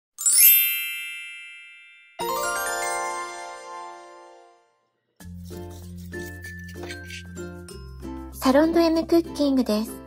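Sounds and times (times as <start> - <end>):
bright high chime: 0.2 - 4.6.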